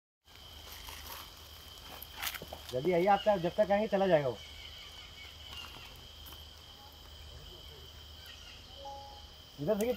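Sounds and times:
insect trilling: 0.3s - 9.9s.

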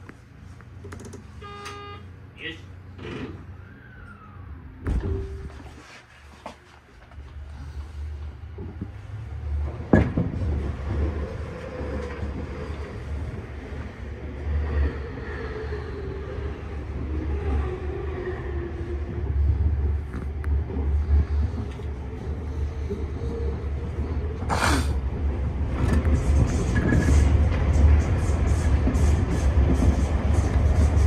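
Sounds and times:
wheels rumbling on rail: 2.1s - 31.0s.

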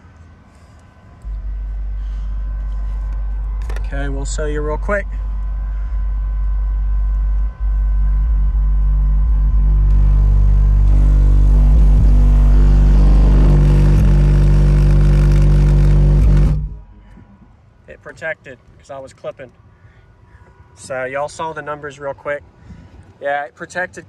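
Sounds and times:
loud distorted subwoofer bass: 1.2s - 17.1s.

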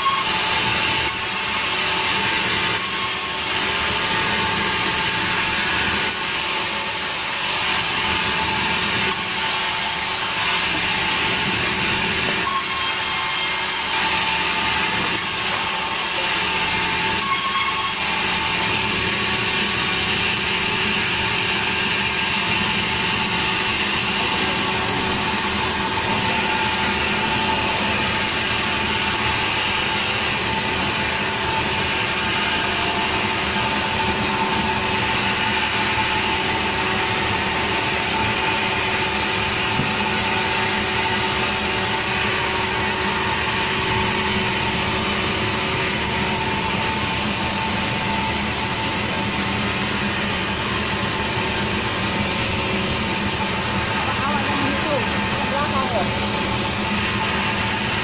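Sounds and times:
sawmill saw and motor whining: 0.0s - 58.0s.

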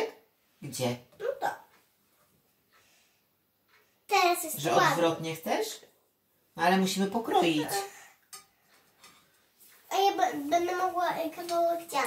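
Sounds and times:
child talking sing-song: 9.9s - 12.0s.

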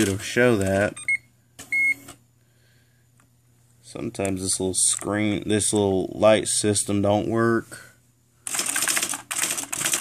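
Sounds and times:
electronic typewriter clatter: 0.0s - 0.2s, 8.5s - 10.0s.

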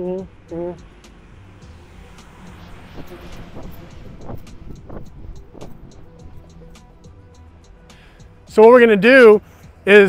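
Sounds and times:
steady low rumble: 0.0s - 7.9s.

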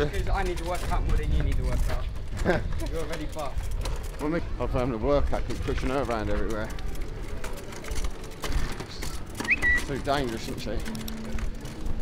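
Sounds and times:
wheelchair rattling over stone paving: 0.0s - 12.0s.

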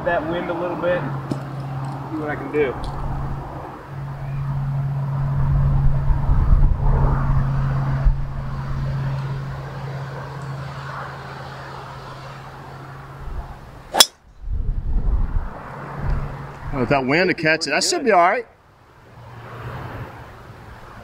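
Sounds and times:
wind buffeting microphone: 5.2s - 9.6s, 14.2s - 17.0s
golf club striking ball: 13.9s - 14.3s.

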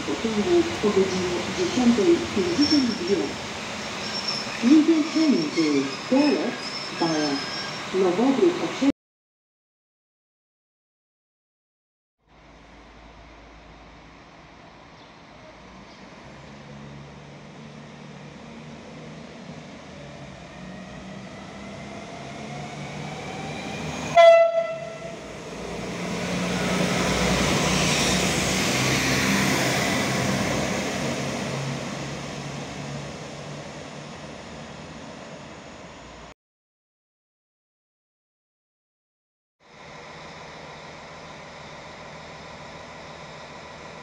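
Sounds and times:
diesel railcar engine: 0.0s - 8.9s, 12.3s - 36.3s, 39.6s - 44.0s
short train horn blast: 24.2s - 25.2s.

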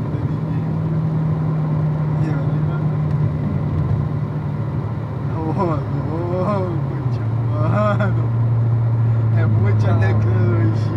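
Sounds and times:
car engine droning: 0.0s - 10.9s
tyre and road noise: 0.0s - 10.9s.

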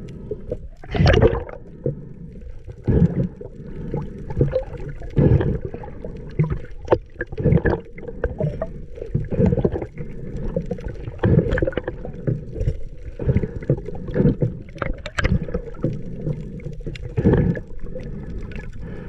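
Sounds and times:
muffled underwater rush: 0.0s - 19.0s.

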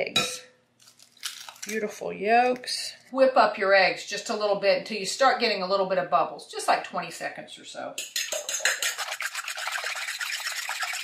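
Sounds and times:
fork whisking eggs in glass bowl: 8.0s - 11.0s.

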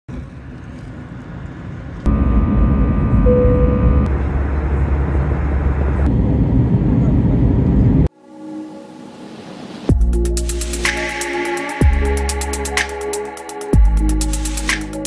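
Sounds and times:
aircraft cabin engine noise: 0.1s - 8.1s
steady whining tones: 2.0s - 8.1s.

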